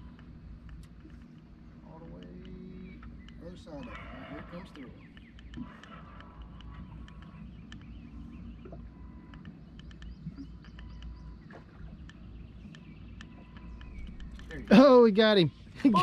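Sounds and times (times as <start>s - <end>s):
faint steady hum: 0.0s - 16.0s
low boat rumble: 0.0s - 16.0s
water splashing against hull: 5.1s - 14.6s.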